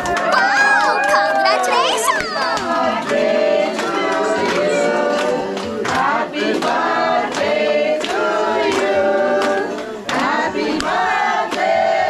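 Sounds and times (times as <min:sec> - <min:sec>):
hand claps: 0:00.0 - 0:01.3, 0:02.1 - 0:12.0
group singing in chorus: 0:02.2 - 0:12.0.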